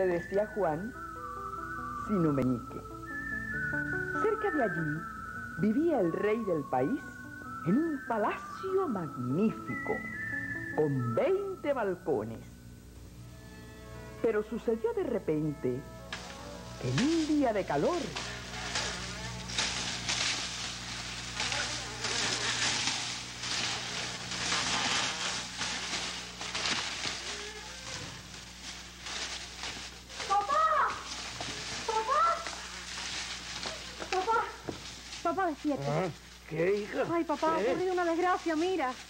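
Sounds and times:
low hum: 0.0 - 39.0
rustling hiss: 0.0 - 39.0
wailing cries: 13.2 - 28.5, 30.1 - 32.8.

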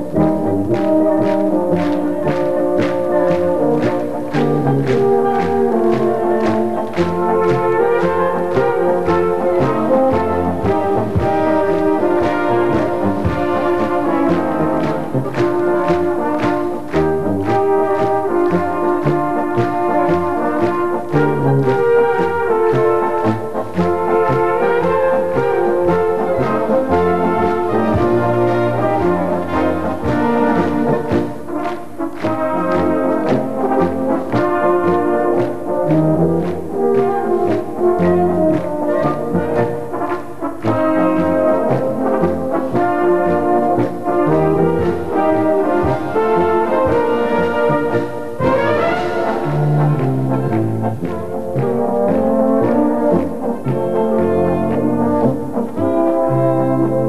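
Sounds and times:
steady drum beat: 0.0 - 53.8
brass band playing folk music: 0.0 - 57.0
horns and trumpets: 0.0 - 57.0
tubas: 0.0 - 57.0
woodwinds: 0.0 - 57.0.

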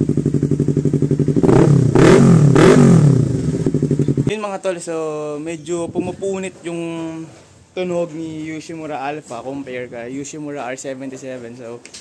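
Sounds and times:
motorcycle engine revving: 0.0 - 4.3.

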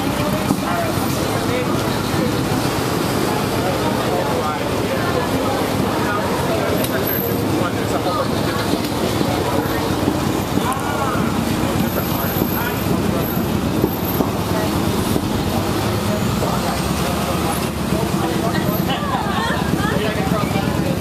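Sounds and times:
city street traffic: 0.0 - 21.0
people talking faintly: 0.0 - 21.0
vehicle engine humming: 0.0 - 21.0.

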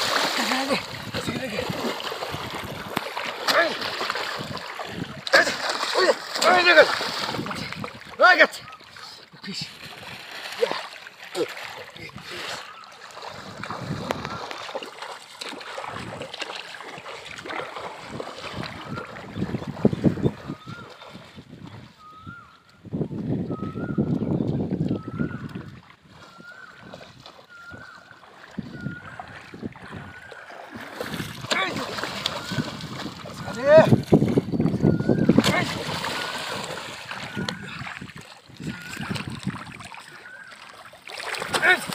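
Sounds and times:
spear splashing into water: 0.0 - 1.0, 30.6 - 34.3, 35.3 - 38.2, 40.6 - 41.9
river water splashing: 0.0 - 22.8, 24.8 - 41.9.

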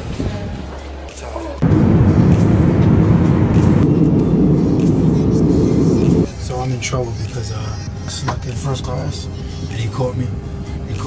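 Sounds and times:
airliner cabin rumbling: 1.6 - 6.3
soft low hum: 1.6 - 6.3.

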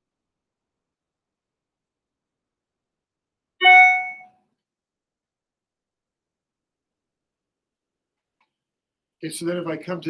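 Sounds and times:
chime-like ringing tone: 3.6 - 4.3.

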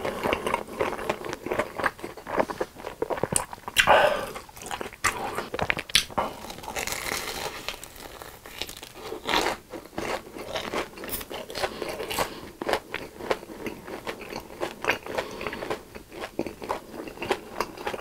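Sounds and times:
crunchy chewing: 0.0 - 18.0
crunchy biting: 3.1 - 13.4.

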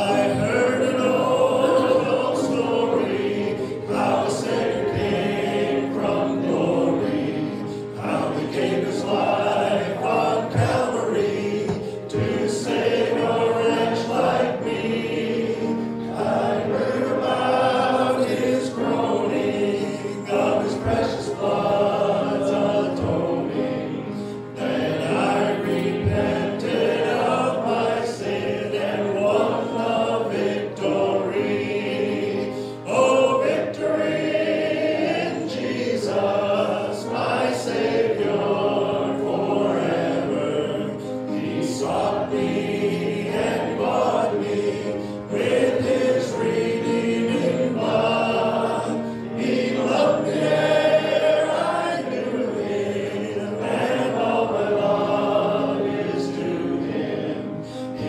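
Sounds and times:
musical accompaniment: 0.0 - 58.0
voices singing a hymn: 0.0 - 58.0.

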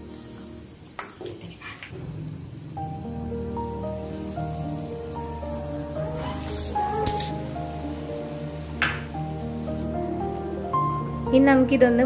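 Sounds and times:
nuggets deep-frying in oil: 0.0 - 12.0
melody of held notes: 3.0 - 12.0.

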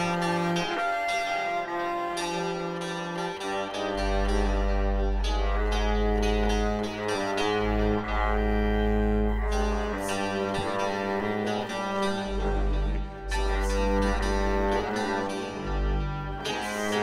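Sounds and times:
bowed double bass: 0.0 - 17.0
deep synthesizer drone: 0.0 - 17.0.

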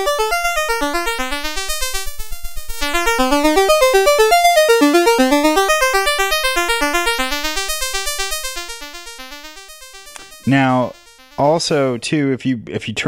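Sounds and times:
synthesizer pulse wave sequence: 0.0 - 11.8.

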